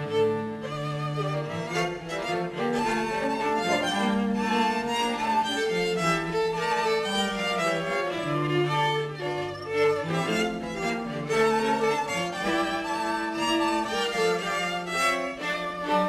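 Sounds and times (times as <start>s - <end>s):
sustained cello: 0.0s - 16.0s
violins playing melody: 0.0s - 16.0s.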